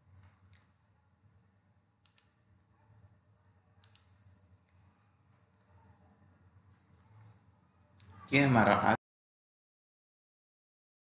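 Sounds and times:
faint low hum: 0:00.0 - 0:09.0
computer mouse double clicks: 0:02.0 - 0:02.4.

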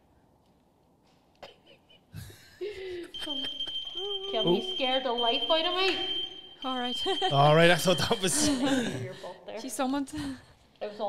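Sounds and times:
high-pitched electronic beep: 0:03.2 - 0:08.9.

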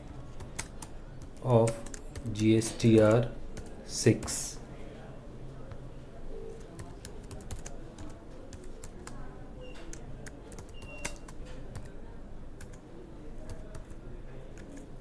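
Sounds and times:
computer keyboard typing: 0:00.0 - 0:04.4, 0:06.5 - 0:12.0, 0:12.6 - 0:15.0.

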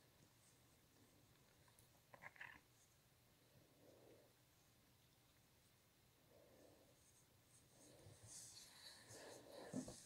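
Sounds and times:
yarn rustling with crochet hook: 0:06.9 - 0:10.0.

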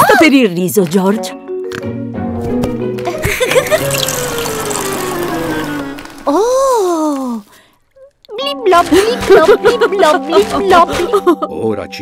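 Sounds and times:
background music: 0:00.0 - 0:12.0
cartoon liquid pouring: 0:03.5 - 0:07.7.

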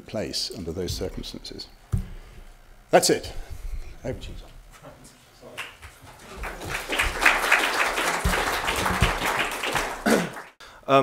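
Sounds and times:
audience applauding: 0:05.6 - 0:10.6.

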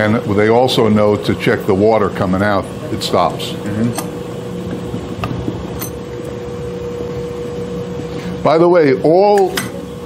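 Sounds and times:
freezer motor humming: 0:00.0 - 0:10.0.

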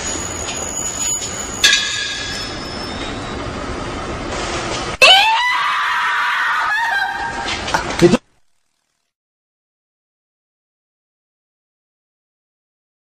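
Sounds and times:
loud high shriek: 0:00.0 - 0:03.5.

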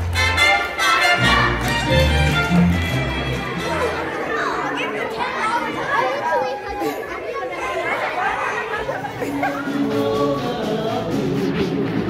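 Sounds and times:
children chattering: 0:00.3 - 0:10.7.

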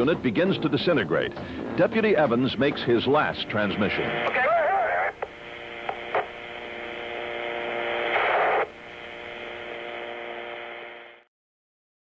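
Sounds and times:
radio hum: 0:00.5 - 0:11.3
burst of static: 0:02.8 - 0:11.3
radio clicks: 0:04.1 - 0:11.0.

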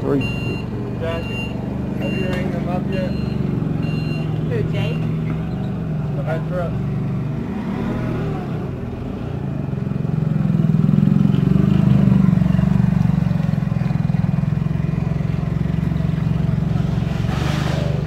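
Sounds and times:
forklift engine revving: 0:00.1 - 0:18.0.

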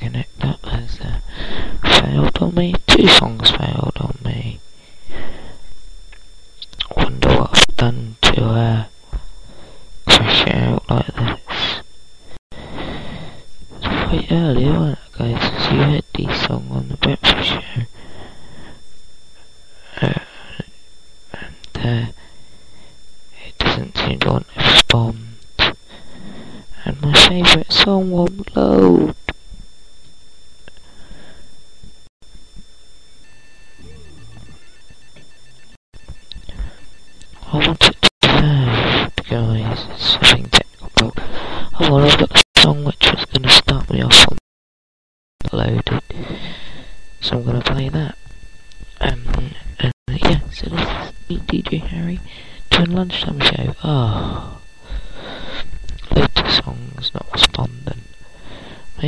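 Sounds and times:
person talking: 0:00.0 - 0:05.4, 0:06.6 - 0:08.9, 0:10.0 - 0:11.8, 0:13.7 - 0:18.0, 0:19.8 - 0:20.7, 0:21.3 - 0:22.2, 0:23.4 - 0:25.8, 0:26.7 - 0:29.2, 0:33.8 - 0:34.6, 0:37.3 - 0:44.4, 0:45.4 - 0:46.6, 0:47.2 - 0:48.2, 0:49.0 - 0:54.6, 0:55.2 - 0:59.0
faint steady electronic tones: 0:00.0 - 0:44.4, 0:45.4 - 0:59.0
broken beeping tones: 0:33.1 - 0:44.3, 0:45.5 - 0:59.0.

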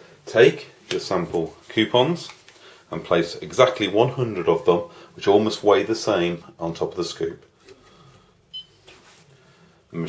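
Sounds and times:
scale beep: 0:08.5 - 0:08.8.

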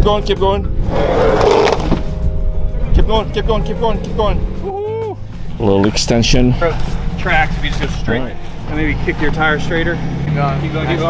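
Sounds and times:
tyre rolling over plastic and sand: 0:01.2 - 0:02.1
van engine: 0:05.2 - 0:11.0.

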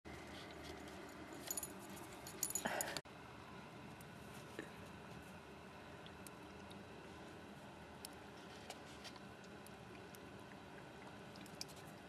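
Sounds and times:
dog collar tags jingling: 0:00.7 - 0:03.0.

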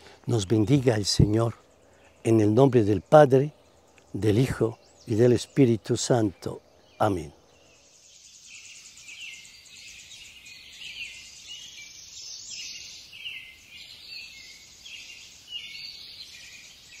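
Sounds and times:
bird chirps: 0:00.0 - 0:17.0
insect trill: 0:00.0 - 0:17.0.

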